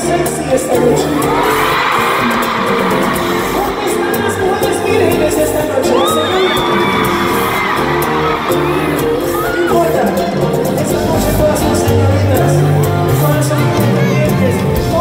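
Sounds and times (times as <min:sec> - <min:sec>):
live band playing: 0:00.0 - 0:15.0
male lead singer: 0:00.0 - 0:15.0
crowd whooping and cheering: 0:01.0 - 0:10.6.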